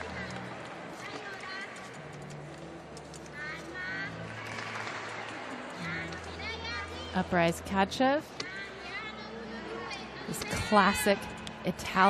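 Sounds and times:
low crowd murmur: 0.0s - 12.0s.

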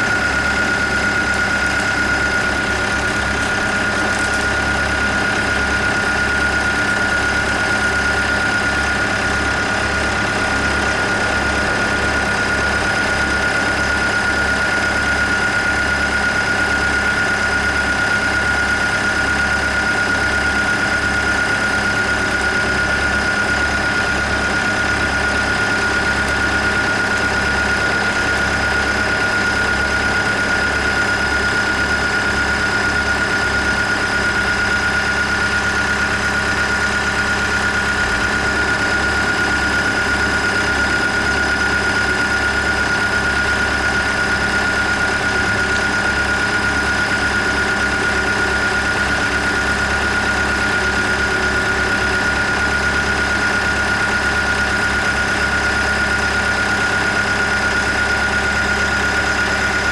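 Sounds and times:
constant high whine: 0.0s - 59.9s
diesel engine running: 0.0s - 59.9s.

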